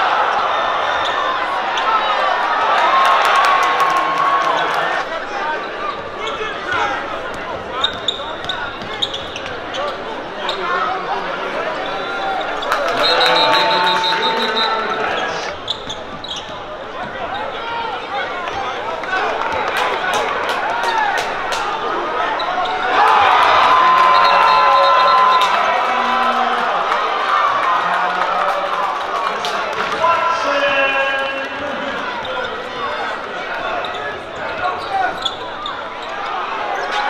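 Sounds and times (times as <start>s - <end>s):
crowd chatter: 0.0s - 37.0s
loud steady held tone: 13.0s - 15.4s.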